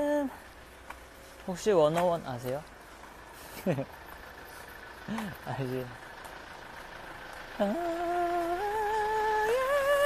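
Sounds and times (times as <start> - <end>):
man humming: 0.0 - 0.4, 7.6 - 10.0
faint street noise: 0.0 - 10.0.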